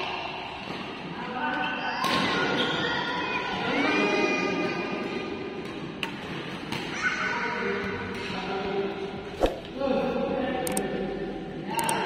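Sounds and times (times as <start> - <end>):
voices in hall: 0.0 - 6.0, 6.8 - 12.0.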